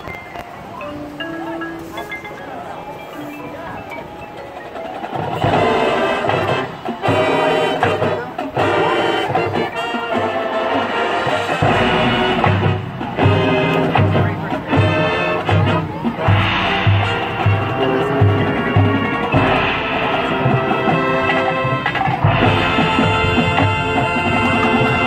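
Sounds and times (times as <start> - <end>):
marching band playing: 0.0 - 25.0
steady low drum beat: 11.6 - 25.0.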